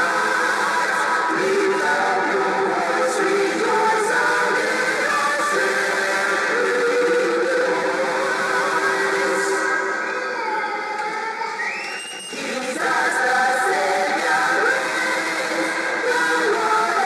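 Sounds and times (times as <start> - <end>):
church choir singing: 0.0 - 11.3, 12.3 - 17.0.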